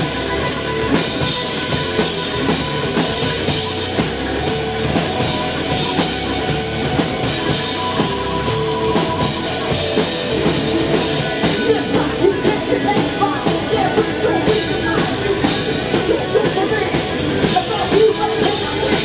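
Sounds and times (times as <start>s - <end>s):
bass guitar: 0.0s - 19.0s
drum kit: 0.0s - 19.0s
electric guitar: 0.0s - 19.0s.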